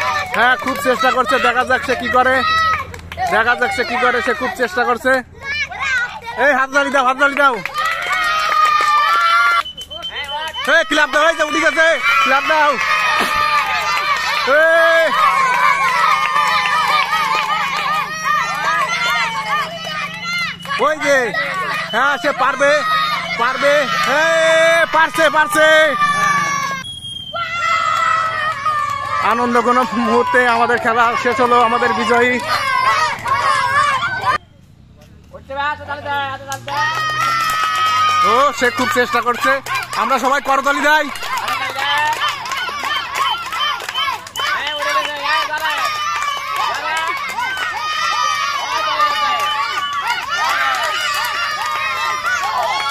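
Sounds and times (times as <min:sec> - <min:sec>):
children screaming and yelling: 0:00.0 - 0:34.5, 0:35.9 - 0:52.9.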